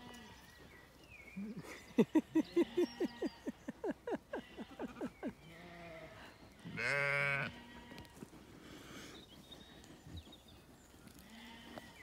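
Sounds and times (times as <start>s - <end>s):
sheep bleating: 2.4s - 3.4s, 4.4s - 8.2s, 11.3s - 12.0s.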